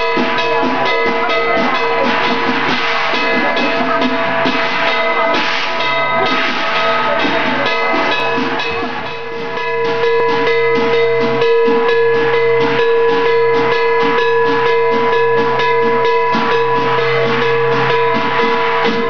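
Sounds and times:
cymbals clashing: 0.0 - 19.0
drum beating: 0.0 - 19.0
metallic ringing: 0.0 - 19.0.

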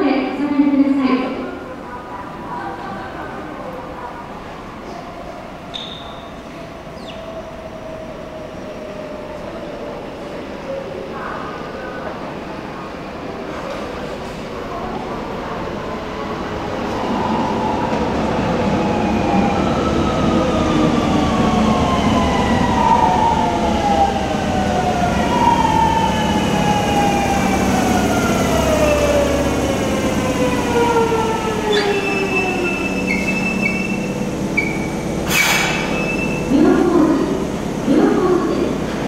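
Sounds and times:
train braking: 4.8 - 10.6, 16.9 - 39.0.

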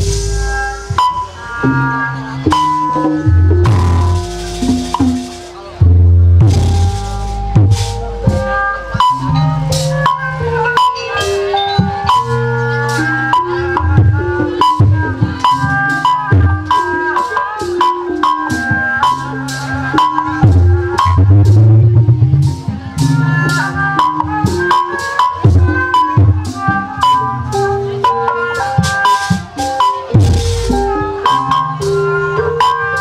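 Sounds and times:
gamelan music: 0.0 - 33.0
ringing metal-keyed notes: 0.0 - 33.0.

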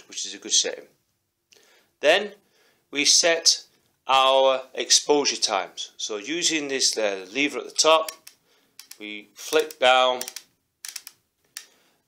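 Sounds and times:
camera dial detent clicks: 8.1 - 11.7.

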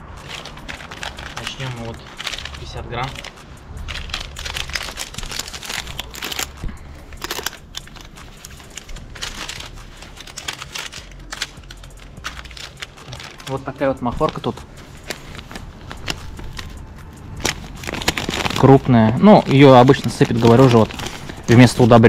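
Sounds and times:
paper packet crinkling: 0.0 - 22.0.

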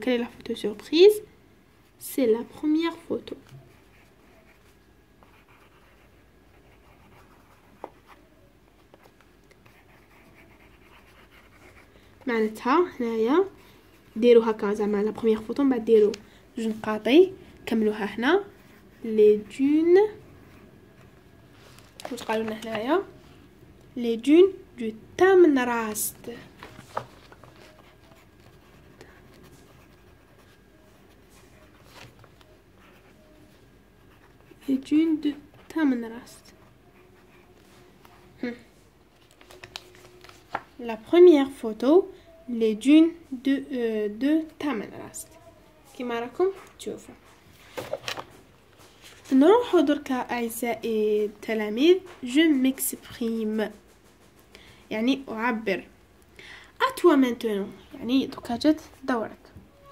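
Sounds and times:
pencil scratching on paper: 3.5 - 8.3, 9.6 - 12.5, 27.5 - 31.8, 32.8 - 33.4, 36.6 - 37.7.

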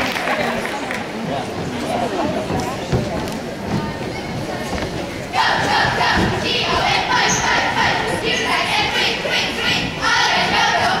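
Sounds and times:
crowd murmur: 0.0 - 11.0
cheerleaders shouting in unison: 5.3 - 11.0.

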